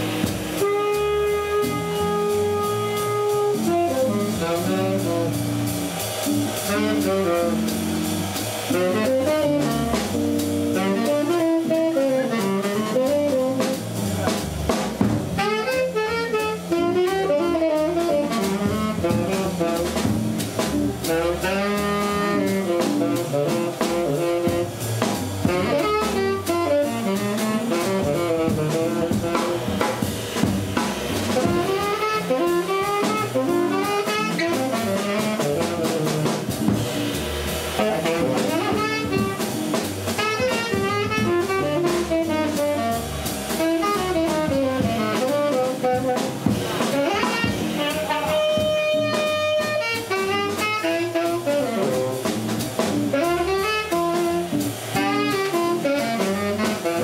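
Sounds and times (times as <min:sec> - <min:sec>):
saxophone solo: 0:00.0 - 0:30.4, 0:31.0 - 0:57.0
bass and electric guitar: 0:00.0 - 0:57.0
drum kit cymbals: 0:00.0 - 0:57.0.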